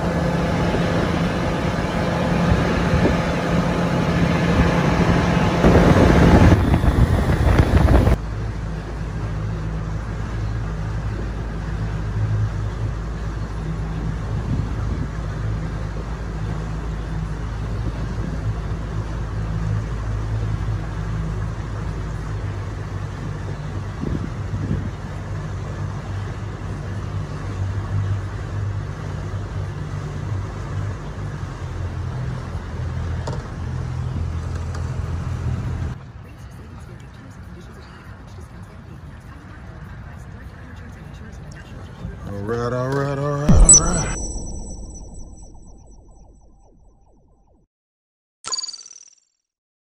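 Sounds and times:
wind and water spray rushing: 5.0 - 8.2.

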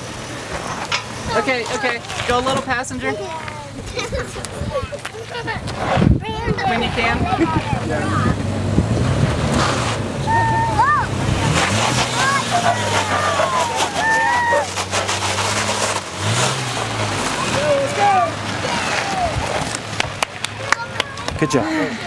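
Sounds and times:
truck engine under load: 0.0 - 22.0
onlookers calling out excitedly: 10.1 - 22.0.

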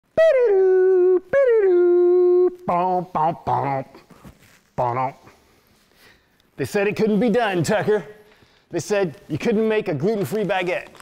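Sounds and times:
person giving long calls: 0.0 - 4.1, 4.8 - 5.4.

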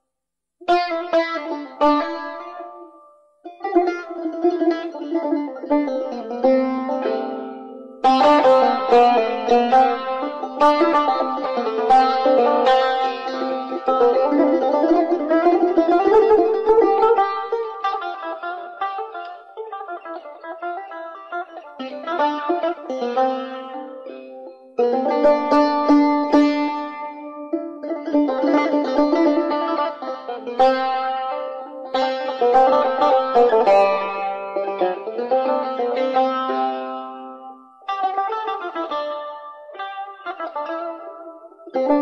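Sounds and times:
plucked long-necked lute: 0.6 - 42.0.

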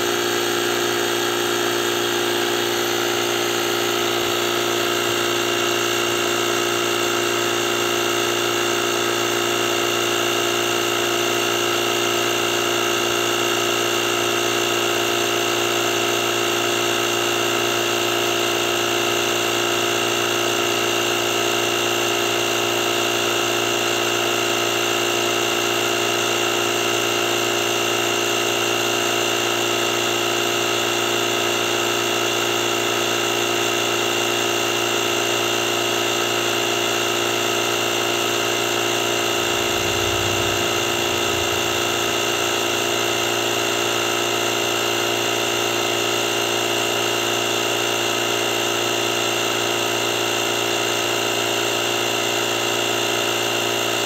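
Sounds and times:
air compressor running: 0.0 - 54.0.

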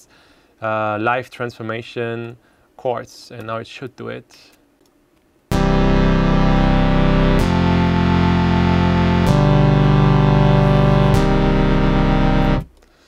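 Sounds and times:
sustained synth chords: 5.5 - 12.8.

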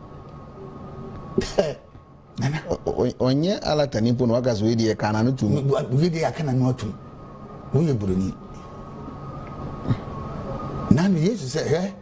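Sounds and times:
faint room hum: 0.0 - 12.0
person coughing: 1.4 - 1.9.

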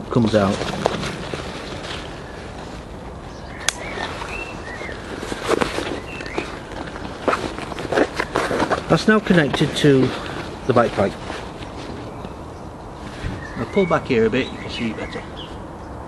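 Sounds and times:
nylon fabric rustling: 0.1 - 13.9.

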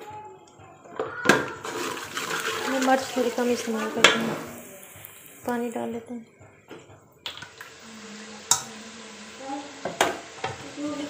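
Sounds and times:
frying hiss and stirring: 1.3 - 11.0.

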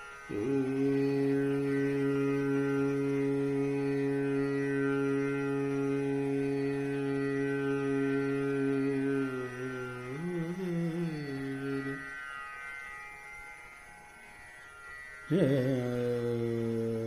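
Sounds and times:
man singing long held note: 0.0 - 12.3, 15.3 - 17.0.

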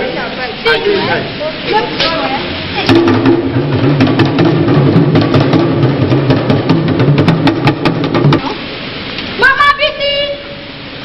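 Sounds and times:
low drum line: 1.9 - 8.6.

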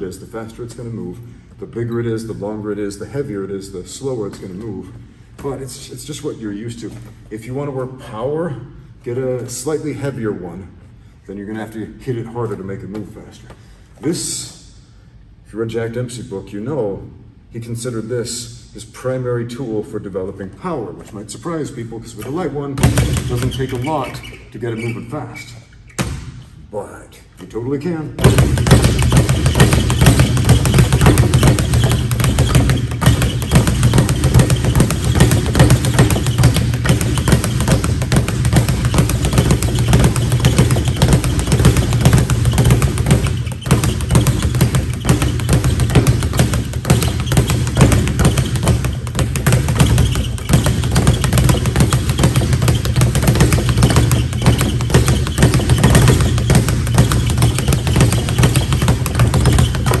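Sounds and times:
speed bag rattling: 28.2 - 60.0.

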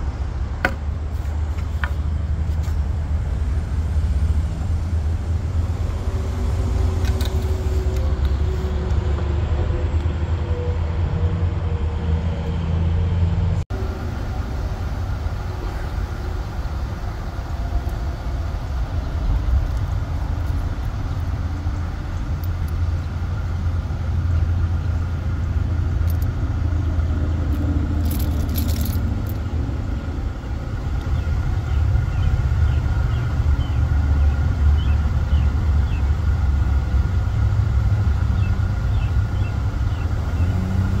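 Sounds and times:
vehicle engine idling: 13.6 - 41.0.

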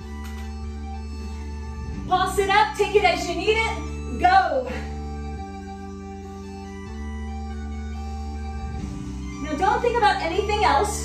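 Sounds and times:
keyboard chords music: 0.0 - 11.0.

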